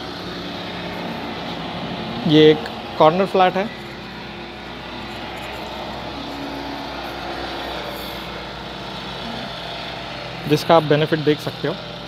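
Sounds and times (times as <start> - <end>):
faint engine hum: 0.0 - 12.0
outdoor rumble and hiss: 0.0 - 12.0.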